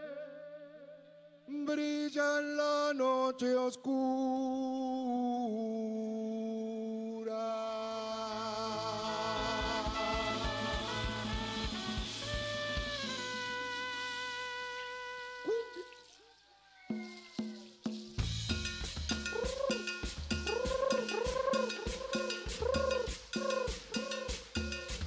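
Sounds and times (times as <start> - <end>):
long sung notes: 6.4 - 12.0
brass section chords: 8.5 - 15.8
drum and bass hits: 9.4 - 13.6, 18.2 - 25.0.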